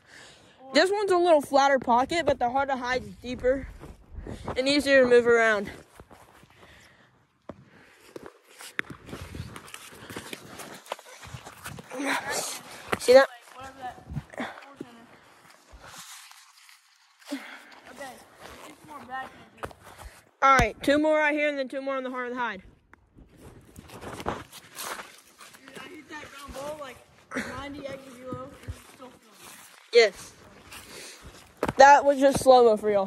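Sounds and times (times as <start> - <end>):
footsteps on dry leaves: 14.9 - 20.0, 23.3 - 27.3, 28.0 - 31.7.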